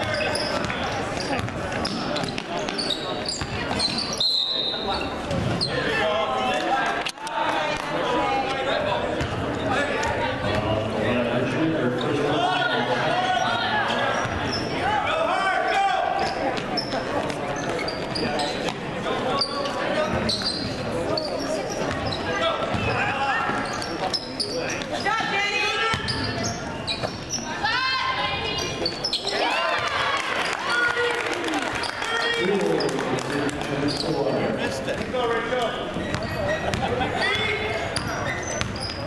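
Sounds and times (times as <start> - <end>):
basketball dribbling: 0.0 - 4.1, 36.0 - 37.0, 38.0 - 39.0
laughter: 36.5 - 37.4.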